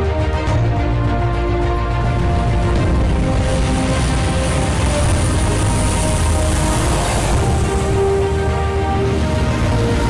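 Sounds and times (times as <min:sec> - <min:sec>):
propeller and engine noise: 0:00.0 - 0:10.0
high turbine whine: 0:01.4 - 0:10.0.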